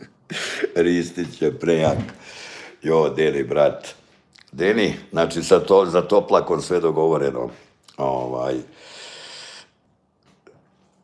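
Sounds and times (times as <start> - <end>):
breath into microphone: 2.2 - 2.8, 8.7 - 9.8.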